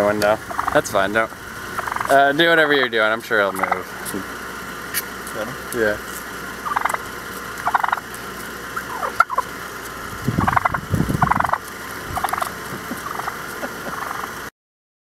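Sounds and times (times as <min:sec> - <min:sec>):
turkey gobbling: 0:00.4 - 0:14.5.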